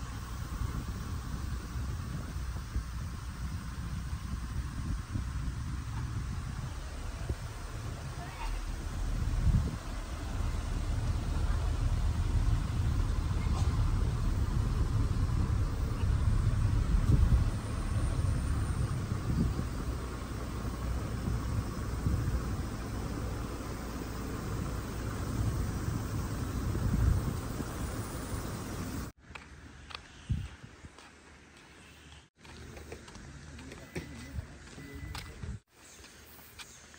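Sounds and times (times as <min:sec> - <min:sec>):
car tyres and engine rumble: 0:00.0 - 0:36.9.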